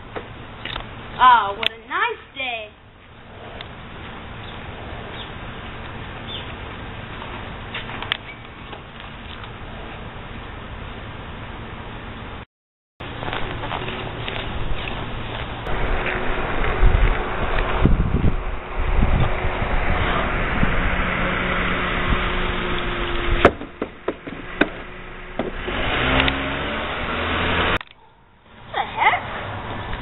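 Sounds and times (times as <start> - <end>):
car driving past: 15.7 - 23.5, 24.4 - 27.8
sharp knocks: 23.4 - 25.7.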